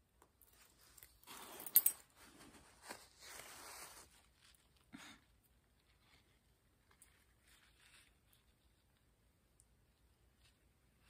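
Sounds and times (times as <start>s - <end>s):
paper tissue and clothing rustling: 0.6s - 9.1s.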